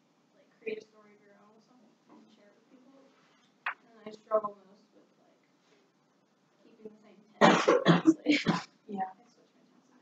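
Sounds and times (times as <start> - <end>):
person speaking: 6.6 - 10.0
person coughing: 7.4 - 8.7.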